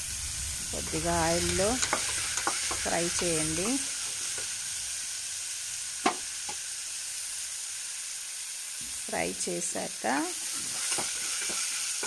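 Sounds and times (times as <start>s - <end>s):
vegetables sizzling in hot oil: 0.0s - 12.0s.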